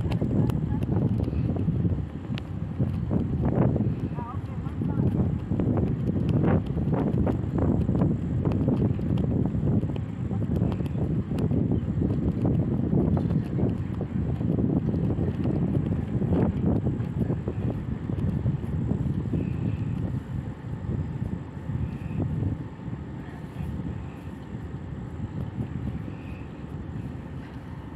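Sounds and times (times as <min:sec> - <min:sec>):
diesel engine low rumble: 0:00.0 - 0:27.9
wind buffeting microphone: 0:00.0 - 0:27.9.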